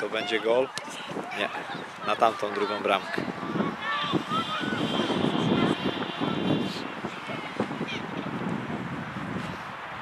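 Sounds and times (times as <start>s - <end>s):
voices calling out: 0.0s - 8.4s.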